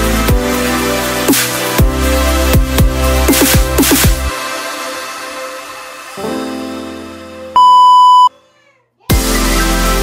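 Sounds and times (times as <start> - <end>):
electronic music: 0.0 - 7.2, 9.1 - 10.0
electronic beep: 7.6 - 8.3.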